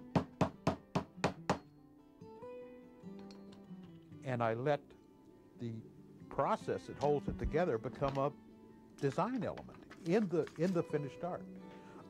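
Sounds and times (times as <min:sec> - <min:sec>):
soft acoustic guitar music: 0:00.0 - 0:12.0.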